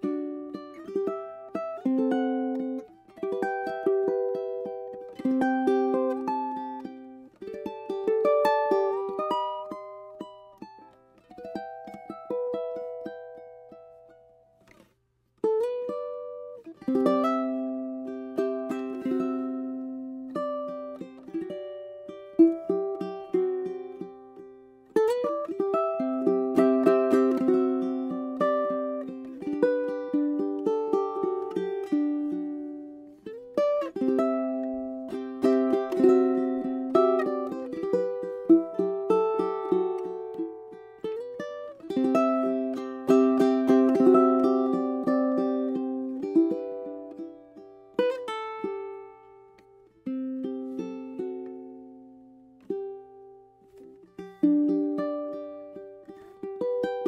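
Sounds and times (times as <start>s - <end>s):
ukulele fingerstyle melody: 0.0s - 57.0s.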